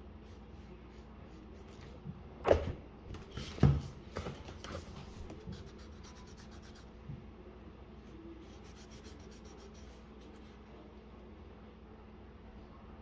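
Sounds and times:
eraser rubbing on paper: 5.5s - 6.9s, 8.4s - 10.5s.

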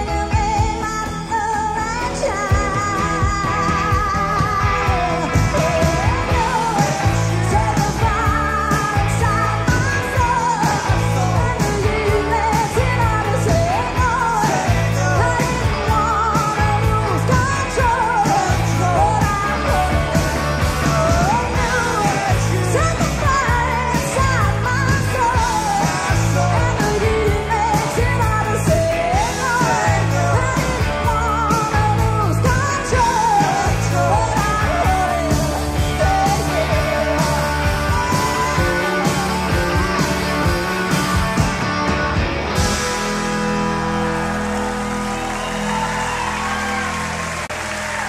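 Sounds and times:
woman singing lead vocal: 0.0s - 42.2s
rock band playing live: 0.0s - 48.0s.

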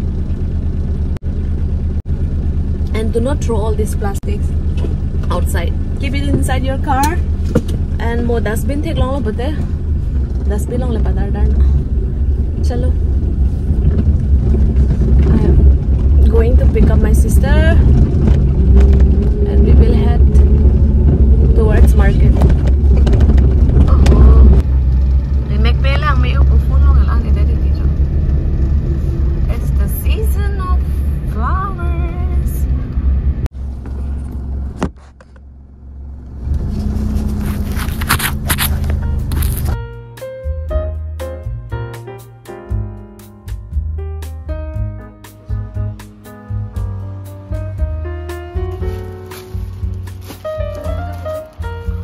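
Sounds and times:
car cabin rumble: 0.0s - 39.9s, 44.7s - 52.0s.

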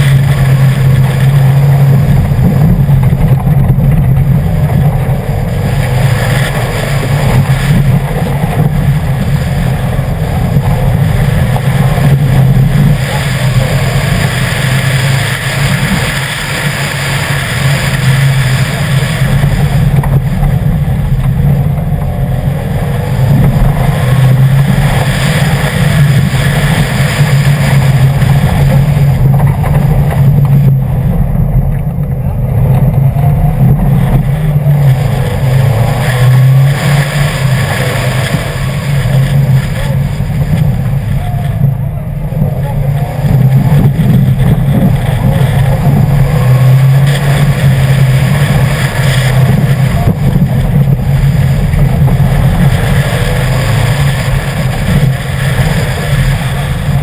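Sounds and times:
rally car engine revving: 0.0s - 57.0s
tyres on loose gravel: 0.0s - 57.0s.

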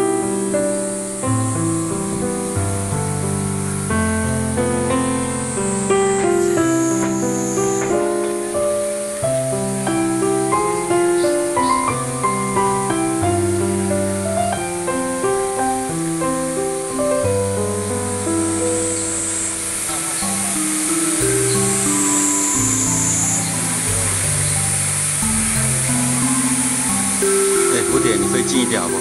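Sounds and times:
slow instrumental music: 0.0s - 29.0s.

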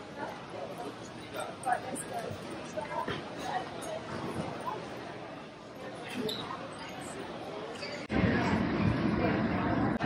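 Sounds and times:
indistinct crowd voices: 0.0s - 10.0s.

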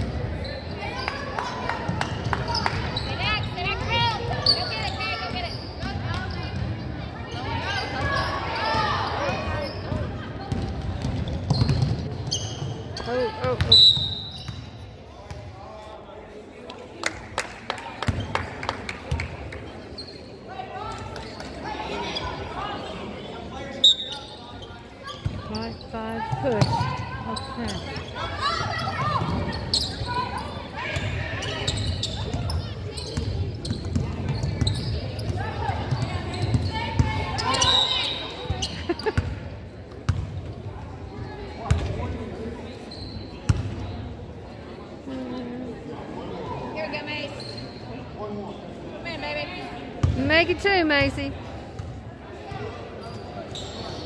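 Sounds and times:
sneaker squeaks: 0.3s - 1.2s, 2.5s - 15.4s, 19.7s - 39.4s, 40.1s - 42.0s, 42.7s - 44.1s, 47.1s - 48.1s, 52.6s - 54.0s.

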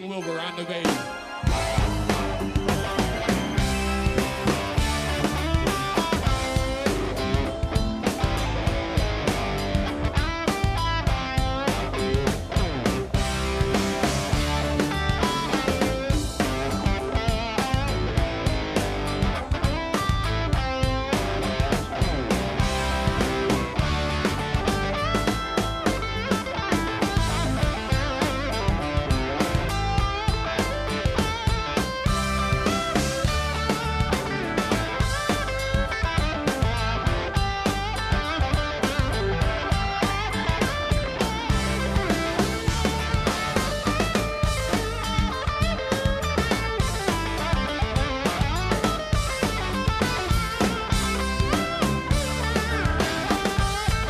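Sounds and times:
live blues-rock band: 0.9s - 54.0s.

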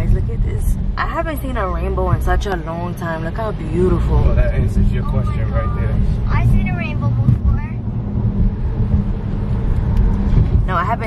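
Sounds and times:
car interior road and engine rumble: 0.0s - 11.0s.

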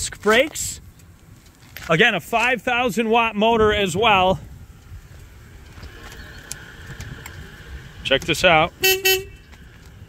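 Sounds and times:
turn signal stalk clicks: 5.6s - 7.5s.

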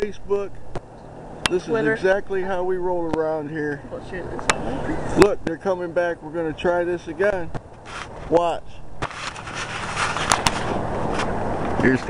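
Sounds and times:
car engine hum: 0.0s - 12.0s.

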